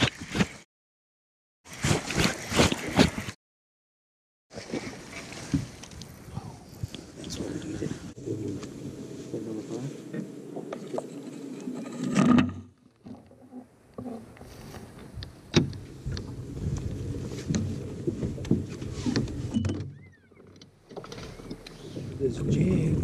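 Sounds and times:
water splashing: 1.7 - 3.4, 4.5 - 6.3.

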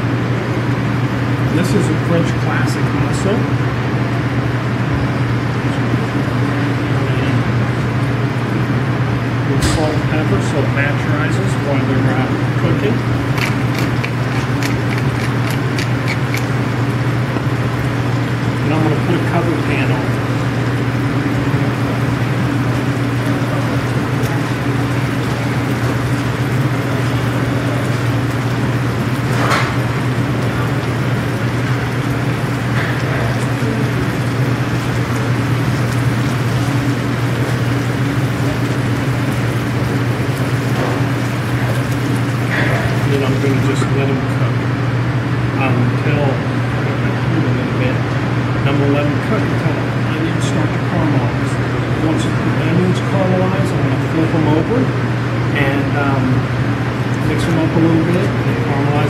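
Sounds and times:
steady low hum: 0.0 - 59.0
potatoes frying in a pan: 12.4 - 43.8
pepper mill grinding clicks: 13.4 - 16.5.

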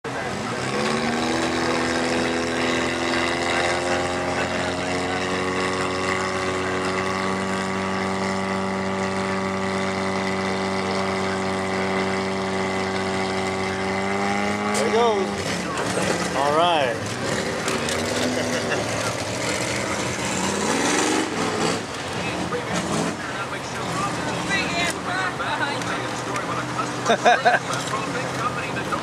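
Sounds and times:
vehicle engine revving: 0.0 - 29.0.

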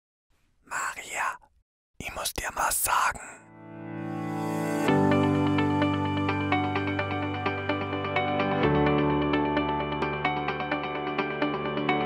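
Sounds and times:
man whispering: 0.6 - 3.5.

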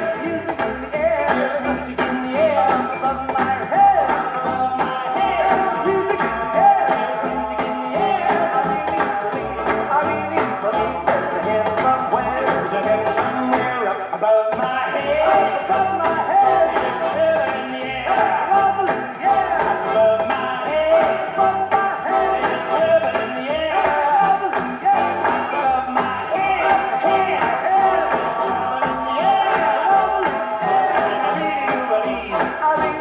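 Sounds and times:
pop song on record player: 0.0 - 33.0.

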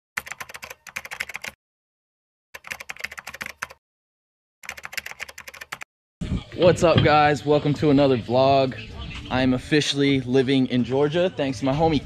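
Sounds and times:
rapid keystroke clatter: 0.2 - 1.6, 2.6 - 3.8, 4.6 - 5.9.

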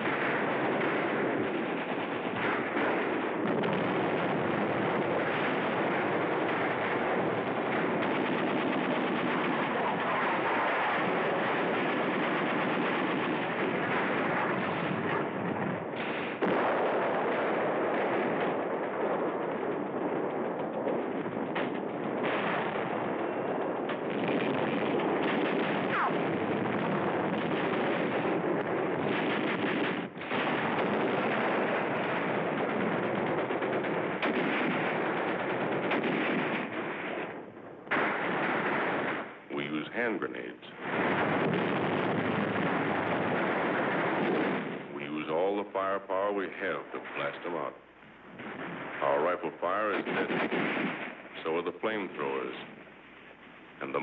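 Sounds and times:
machine-gun fire: 0.0 - 39.4, 40.8 - 46.0, 48.3 - 52.7
rifle shots: 0.0 - 54.0.

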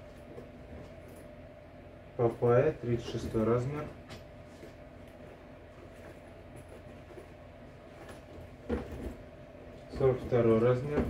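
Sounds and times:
faint low hum: 0.0 - 11.0
handling noise of boots: 4.1 - 11.0.

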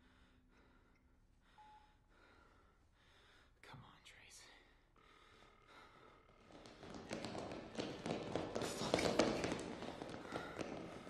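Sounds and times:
quick irregular footsteps: 6.3 - 11.0.

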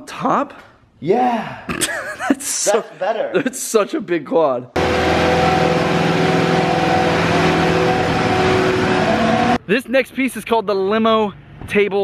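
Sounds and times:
diesel engine running steadily: 4.8 - 9.6.

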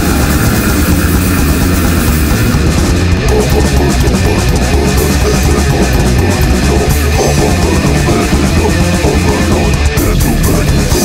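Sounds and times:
death metal band playing live: 0.0 - 11.0.

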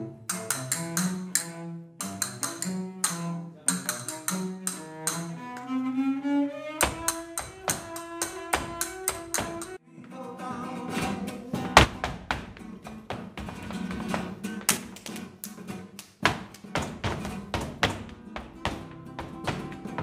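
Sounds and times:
flamenco guitar: 0.0 - 5.8, 6.8 - 20.0
flamenco footwork on stage: 6.8 - 9.8, 10.5 - 20.0.

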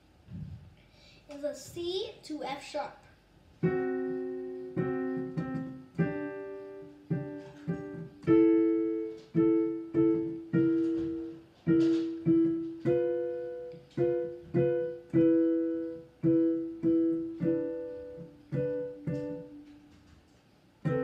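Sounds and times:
digital piano chords: 3.6 - 20.0, 20.8 - 21.0.

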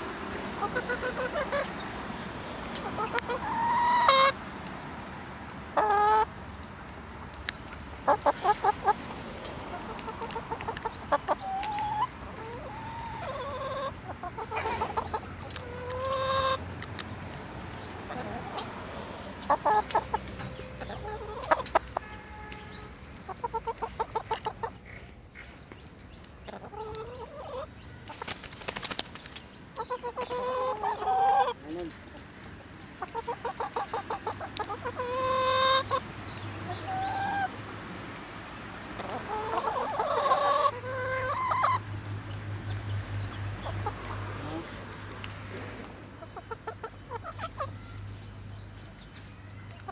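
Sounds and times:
hens clucking and calling: 0.0 - 4.4, 5.7 - 6.6, 7.4 - 38.2, 38.8 - 49.9.

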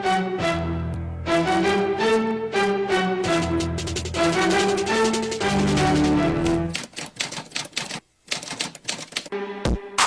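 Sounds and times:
typewriter key clacks: 3.9 - 9.3.

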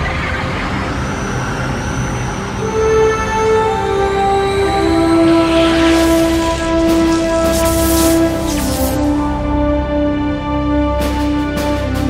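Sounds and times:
deep steady rumble: 0.0 - 12.0
noisy rush: 0.0 - 12.0
long held musical chords: 0.2 - 12.0.

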